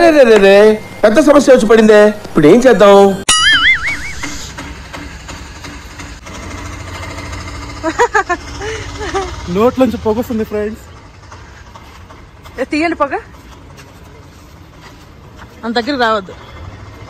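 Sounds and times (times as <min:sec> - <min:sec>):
vehicle engine idling: 0:04.0 - 0:17.0.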